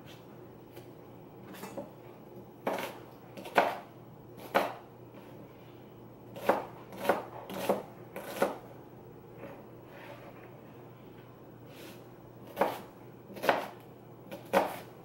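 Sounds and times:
knife chopping on cutting board: 2.6 - 3.8, 4.4 - 4.8, 6.4 - 8.6, 12.5 - 14.9.

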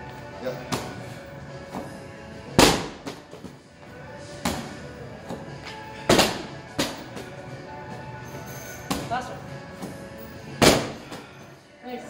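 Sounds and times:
medicine ball smack with echo: 2.6 - 3.2, 4.4 - 4.8, 6.1 - 7.2, 10.6 - 11.2.

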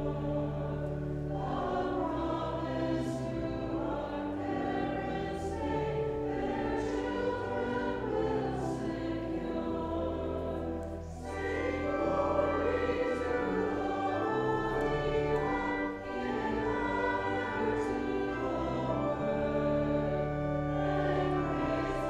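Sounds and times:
church choir singing: 0.0 - 22.0.

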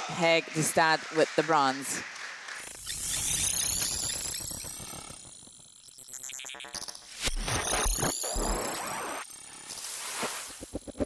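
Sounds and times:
synthesized rising whoosh: 10.5 - 11.0.

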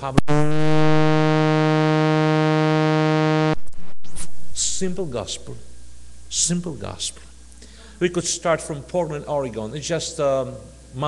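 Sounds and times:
loud low buzzing tone: 0.0 - 7.7.

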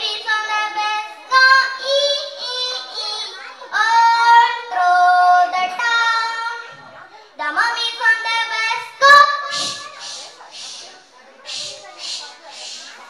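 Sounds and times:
girl singing into microphone: 0.0 - 6.8.

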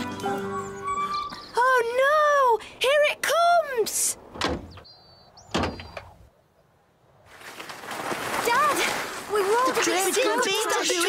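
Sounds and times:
van door thump: 4.4 - 4.8, 5.5 - 5.9.

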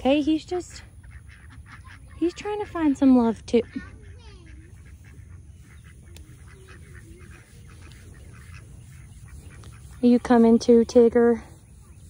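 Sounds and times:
ducks quacking in the distance: 0.0 - 12.0.

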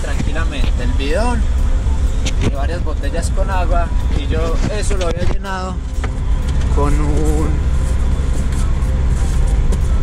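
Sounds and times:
truck engine and road noise: 0.0 - 10.0.

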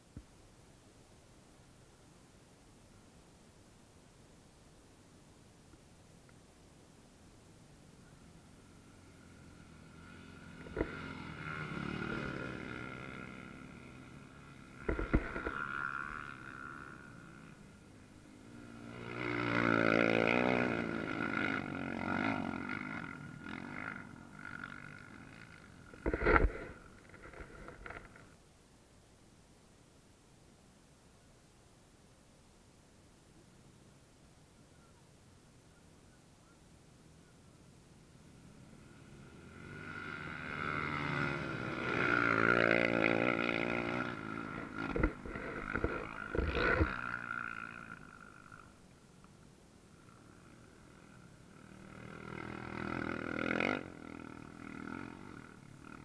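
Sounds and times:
quad engines passing: 8.0 - 28.4, 37.0 - 56.0.

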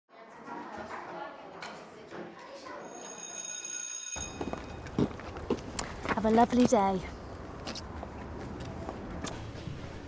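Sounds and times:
electric school bell ringing: 2.8 - 5.0.

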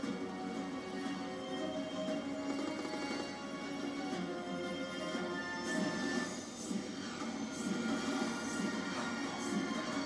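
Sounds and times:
game machine music: 0.0 - 10.0.

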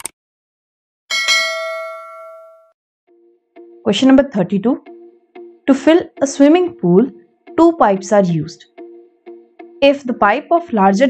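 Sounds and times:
notification bell ding: 1.1 - 2.7.

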